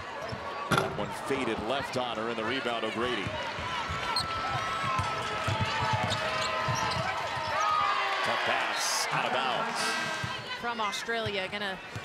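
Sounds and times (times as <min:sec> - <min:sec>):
arena crowd murmur: 0:00.0 - 0:12.0
sneakers squeaking: 0:03.9 - 0:07.8.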